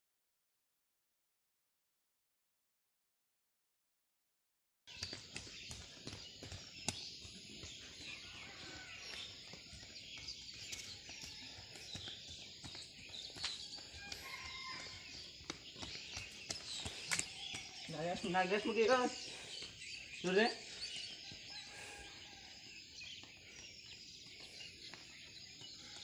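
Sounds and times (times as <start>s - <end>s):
birds chirping faintly: 4.9s - 26.0s.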